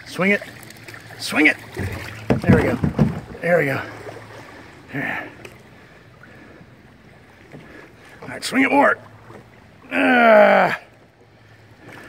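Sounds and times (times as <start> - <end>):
paddle splashing water: 0.0 - 12.0
water lapping around canoe: 0.0 - 12.0.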